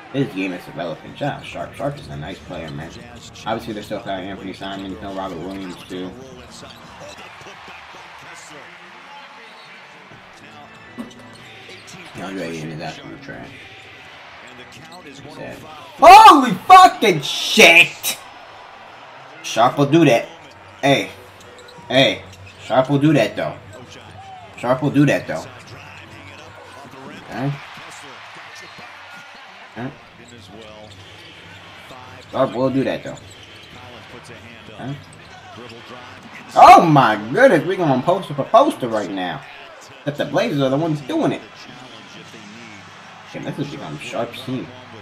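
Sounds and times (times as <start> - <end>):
arena crowd noise: 0.0 - 45.0.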